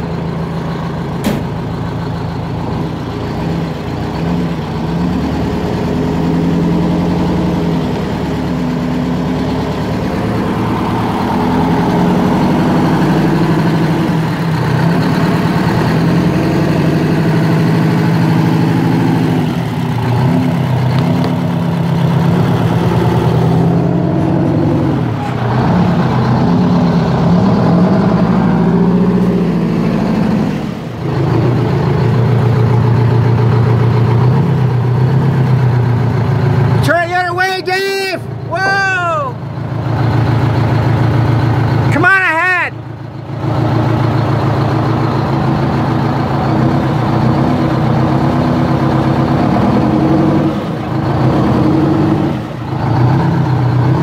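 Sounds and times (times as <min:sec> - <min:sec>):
truck engine running under load: 0:00.0 - 0:42.0, 0:42.7 - 0:54.0.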